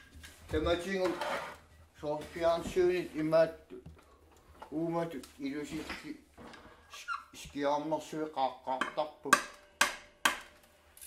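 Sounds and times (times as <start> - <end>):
person speaking: 0.5 - 4.0, 4.6 - 6.3, 6.9 - 9.5.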